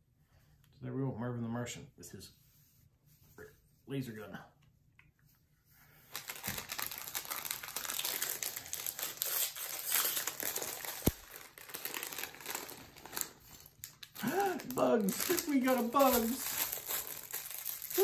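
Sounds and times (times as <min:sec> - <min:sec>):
plastic bag crinkling: 0:06.1 - 0:18.0.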